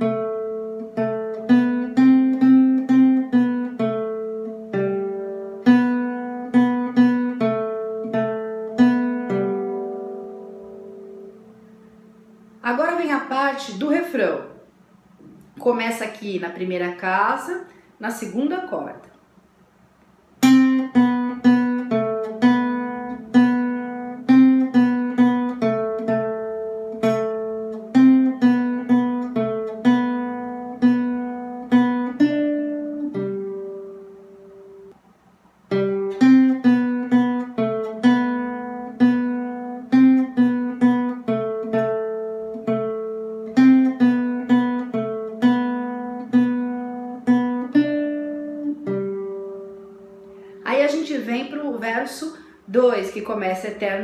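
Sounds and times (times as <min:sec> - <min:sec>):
acoustic guitar melody: 0:00.0 - 0:19.1, 0:20.3 - 0:54.0.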